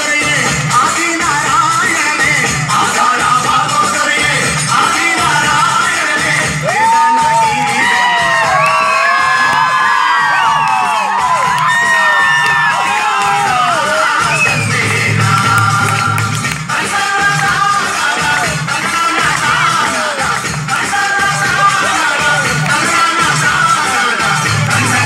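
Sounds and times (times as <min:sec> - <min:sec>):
dance music over loudspeakers: 0:00.0 - 0:25.0
crowd cheering: 0:04.9 - 0:25.0.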